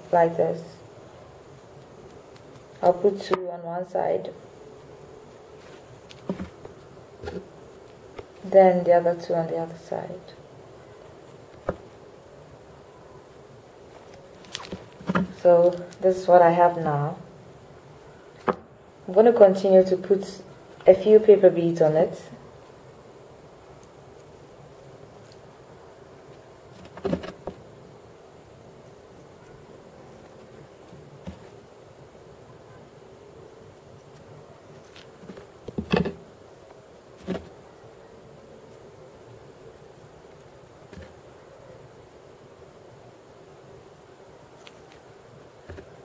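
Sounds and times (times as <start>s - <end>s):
faint hum: 0.0s - 46.0s.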